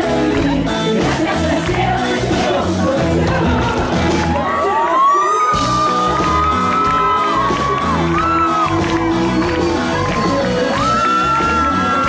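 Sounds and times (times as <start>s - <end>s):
live band music: 0.0s - 12.0s
crowd cheering: 1.0s - 12.0s.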